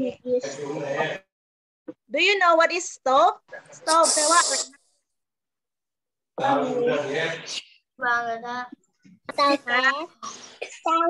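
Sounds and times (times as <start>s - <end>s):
person speaking over video call: 3.5s - 4.8s
loud hiss: 4.0s - 4.7s.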